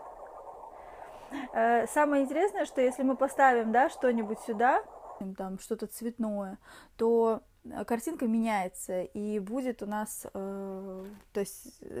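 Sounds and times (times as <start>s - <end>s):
woman speaking: 1.3s - 12.0s.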